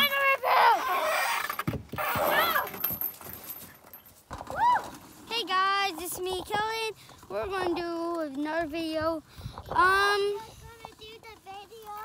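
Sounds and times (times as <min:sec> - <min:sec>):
child squealing: 0:00.0 - 0:01.3, 0:02.2 - 0:02.7.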